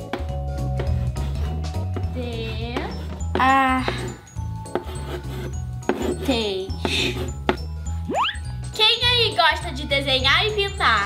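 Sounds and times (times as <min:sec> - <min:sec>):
background music with bass: 0:00.0 - 0:11.0
chalk scraping on blackboard: 0:00.8 - 0:03.3, 0:04.7 - 0:07.6.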